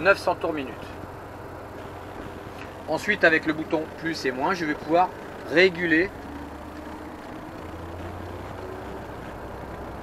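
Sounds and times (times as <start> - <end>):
diesel engine revving up: 1.4 - 10.0.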